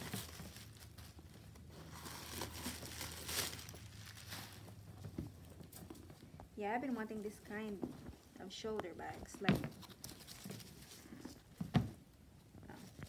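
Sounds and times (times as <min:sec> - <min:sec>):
bag and packaging rustling: 0:00.0 - 0:12.0.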